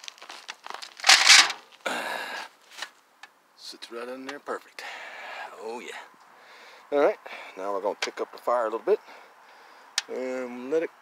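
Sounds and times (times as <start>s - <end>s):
foil pan crinkling: 0.0s - 1.8s.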